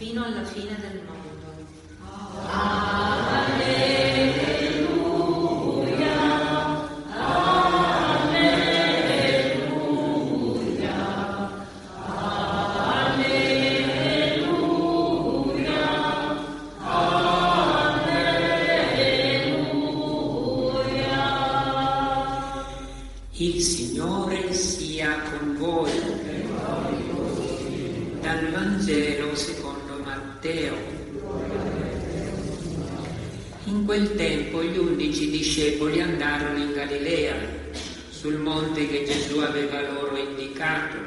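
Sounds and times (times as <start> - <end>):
choir singing a slow chant: 2.0 - 23.2, 25.9 - 28.2.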